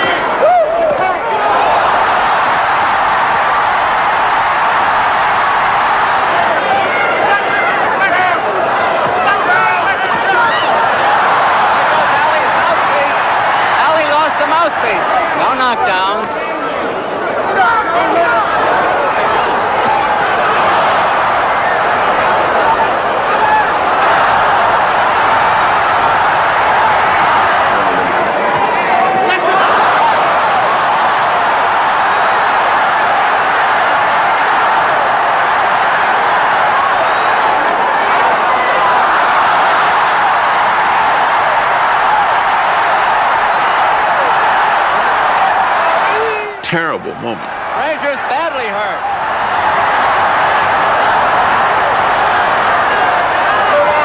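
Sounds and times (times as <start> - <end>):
crowd cheering and shouting: 0.0 - 54.0.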